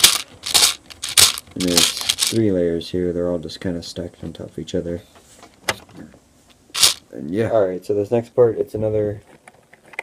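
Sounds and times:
plastic bricks clicking: 0.0s - 2.4s.

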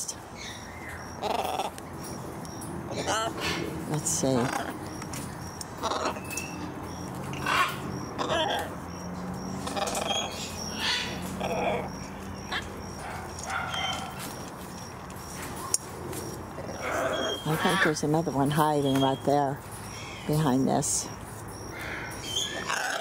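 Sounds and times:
macaws squawking: 0.4s - 2.2s, 2.9s - 14.5s, 15.2s - 20.9s, 21.7s - 23.0s.

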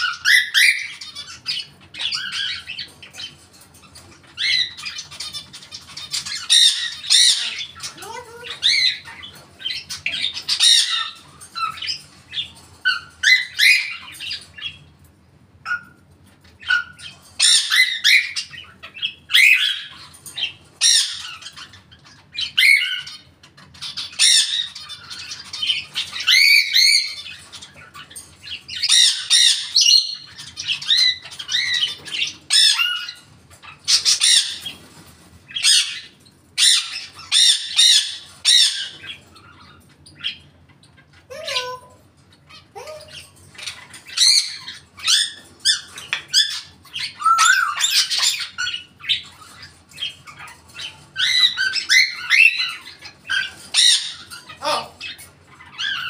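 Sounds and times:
parrot squawking: 0.0s - 14.9s, 15.6s - 34.9s, 35.5s - 56.0s.

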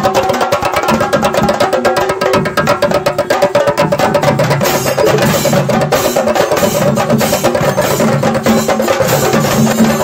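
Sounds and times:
drums beaten rapidly with sticks: 0.0s - 10.0s.

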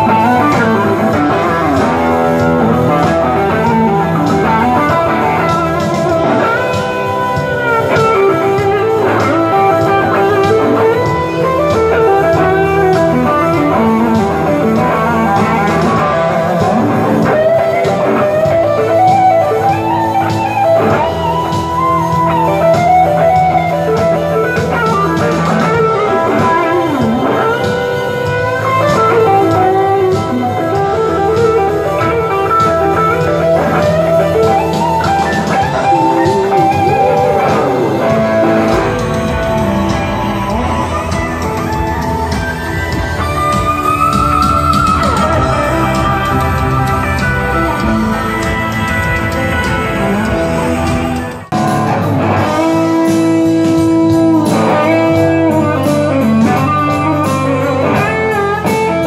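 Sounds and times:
electric guitar lead with bends: 0.0s - 59.0s.

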